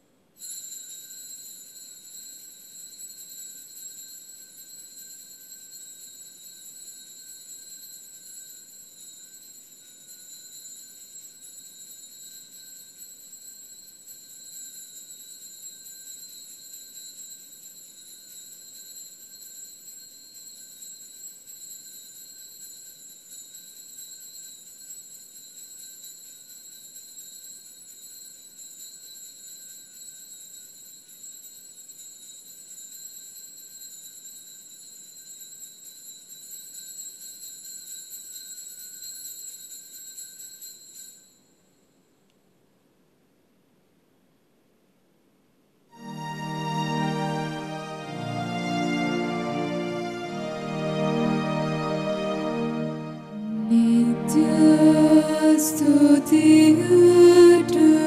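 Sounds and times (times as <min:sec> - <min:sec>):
high-pitched ringing tones: 0:00.4 - 0:42.2, 0:53.0 - 0:58.0.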